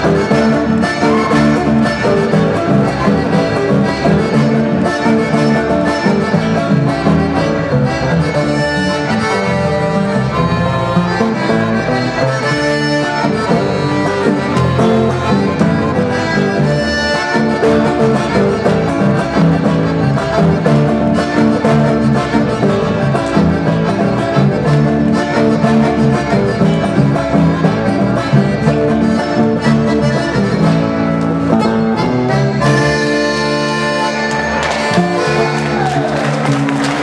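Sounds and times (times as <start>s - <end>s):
accordion: 0.0s - 37.0s
acoustic guitar: 0.0s - 37.0s.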